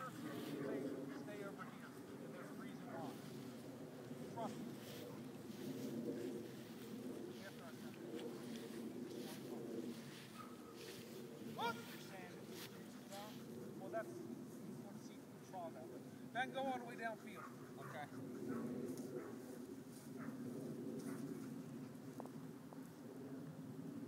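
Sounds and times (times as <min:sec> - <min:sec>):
low murmur: 0:00.0 - 0:16.0.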